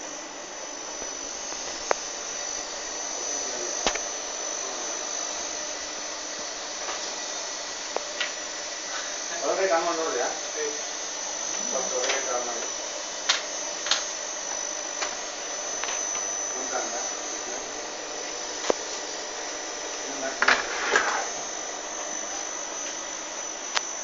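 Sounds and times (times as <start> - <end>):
high-pitched electronic whine: 0.0 - 24.0.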